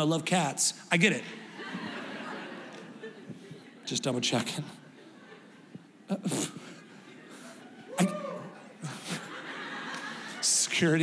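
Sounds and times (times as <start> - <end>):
congregation laughing and talking: 1.0 - 11.0.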